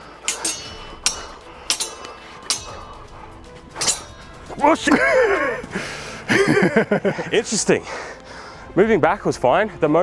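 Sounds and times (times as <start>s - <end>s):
swords clashing: 0.0s - 5.7s.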